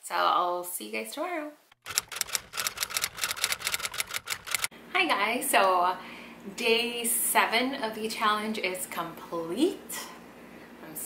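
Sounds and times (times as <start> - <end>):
typewriter key clacks: 1.8 - 4.7.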